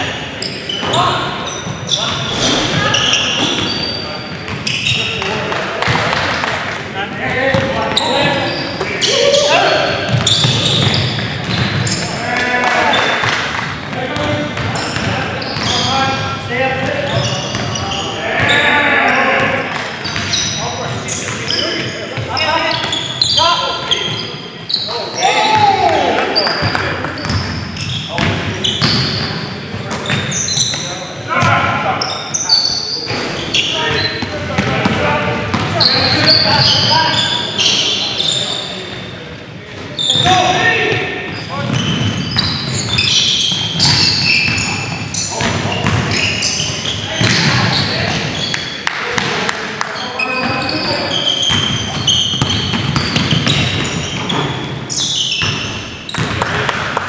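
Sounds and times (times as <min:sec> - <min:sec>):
players shouting: 0:17.2 - 0:19.7, 0:25.0 - 0:26.7
basketball dribbled on hardwood floor: 0:56.2 - 0:56.6.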